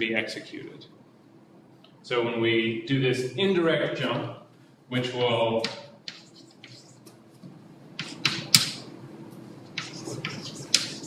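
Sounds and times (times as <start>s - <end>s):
chalk tapping on blackboard: 5.6s - 7.1s, 8.0s - 8.8s, 9.8s - 11.0s.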